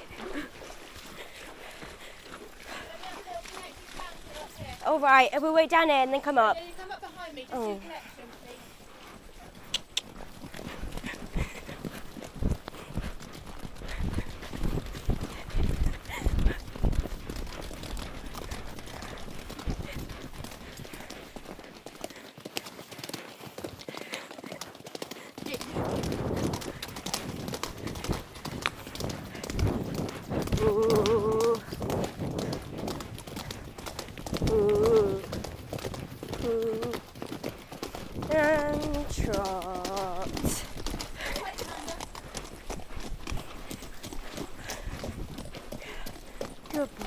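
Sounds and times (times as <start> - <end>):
horse hoofbeats on wet gravel: 0.0 - 47.0.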